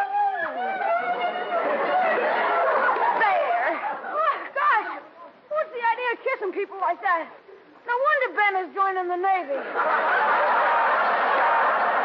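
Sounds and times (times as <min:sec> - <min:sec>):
studio audience laughing: 0:01.4 - 0:04.4, 0:09.6 - 0:12.0.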